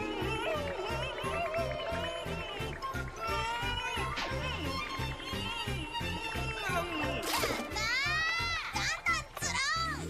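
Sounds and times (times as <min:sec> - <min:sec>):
background music with beat: 0:00.0 - 0:08.8.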